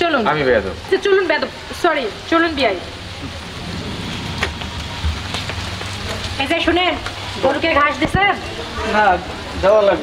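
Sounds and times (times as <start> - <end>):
outdoor background hiss: 0.0 - 10.0
low rumble: 3.2 - 6.9.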